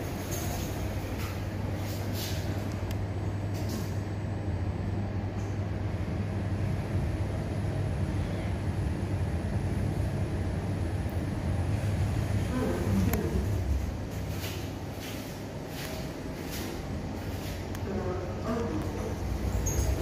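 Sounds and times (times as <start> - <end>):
lift car humming and rumbling: 0.0 - 20.0.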